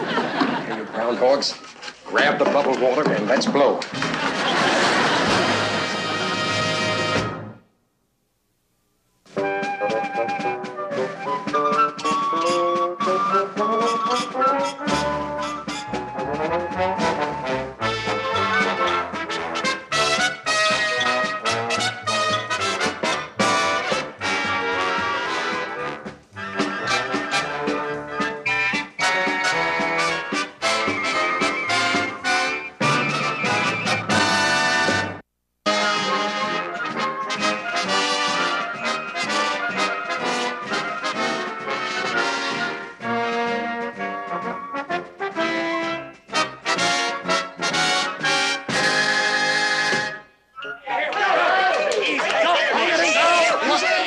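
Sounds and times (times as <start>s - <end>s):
brass band theme music: 3.3s - 7.7s, 9.3s - 50.9s.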